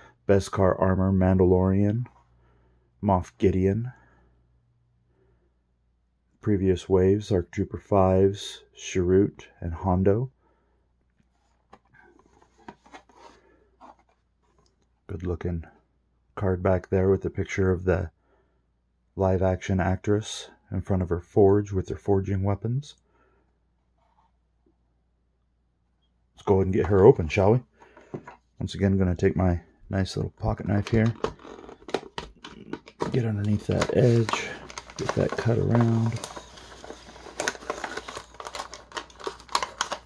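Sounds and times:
plastic package rubbing and scraping: 30.6 - 40.0.

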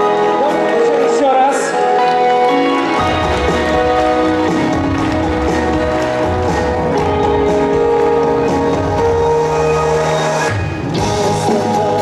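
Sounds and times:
band playing pop music: 0.0 - 12.0.

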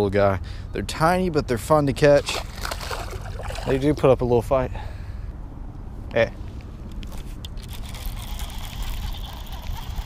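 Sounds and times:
camera handling rumble: 6.6 - 8.2.

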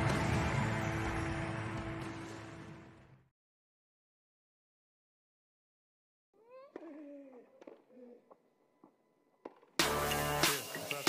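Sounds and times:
loud music with a beat: 9.8 - 11.0.

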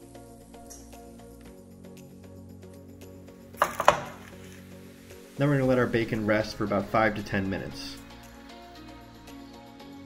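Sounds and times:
background music: 0.0 - 10.0
kitchenware clattering: 3.6 - 4.3.

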